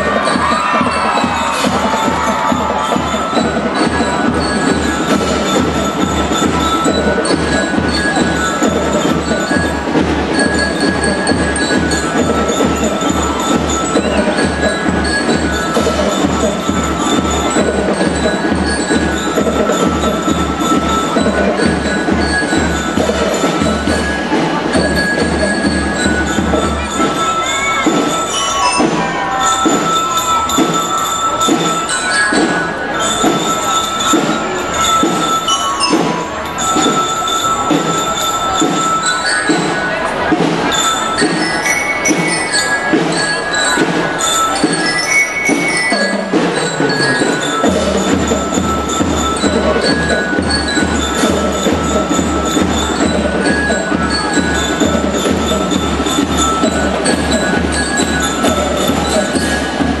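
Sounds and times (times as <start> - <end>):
drum beat: 0.0 - 39.0, 39.6 - 60.0
bell lyres ringing: 0.0 - 60.0.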